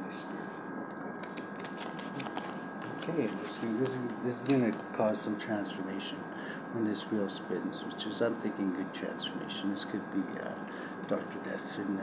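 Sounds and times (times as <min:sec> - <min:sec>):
cards clicking and snapping: 0:01.2 - 0:03.1.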